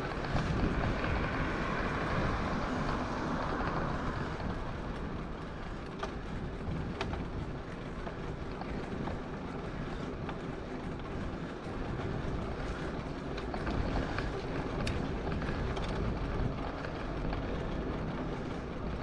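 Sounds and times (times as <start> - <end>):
bicycle tyre rumble on asphalt: 0.0 - 19.0
wind buffeting microphone: 0.0 - 19.0.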